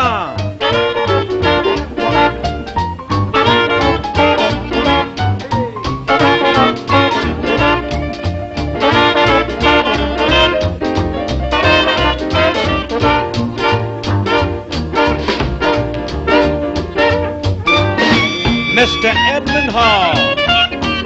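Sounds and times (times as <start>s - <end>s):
jazz band playing swing: 0.0s - 21.0s.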